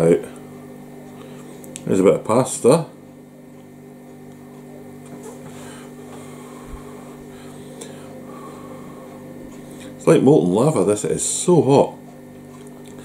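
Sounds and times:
freezer electrical hum: 0.0s - 13.0s
faint eating sounds: 11.9s - 13.0s.

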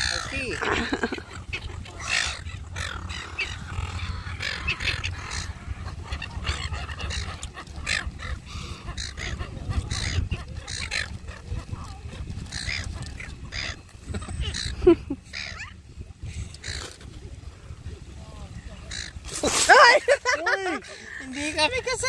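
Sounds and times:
gulls squawking: 0.0s - 17.1s, 18.5s - 22.0s
wind rumble on microphone: 0.0s - 22.0s.

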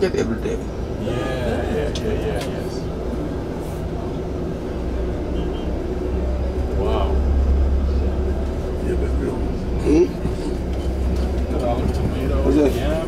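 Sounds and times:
street voices: 0.0s - 13.0s
vehicle engine rumbling: 0.0s - 13.0s.

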